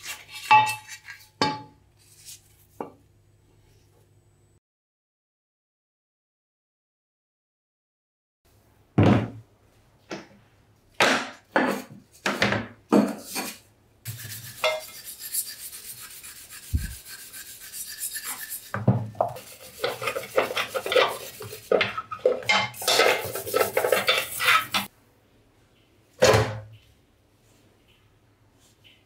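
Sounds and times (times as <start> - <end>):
brush scrubbing metal in water: 14.1 - 24.9.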